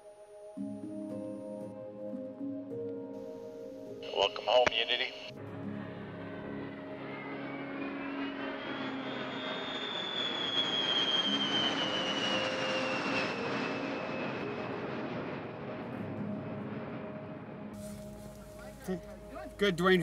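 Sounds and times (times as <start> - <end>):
jet aircraft flying overhead: 3.4 - 20.0.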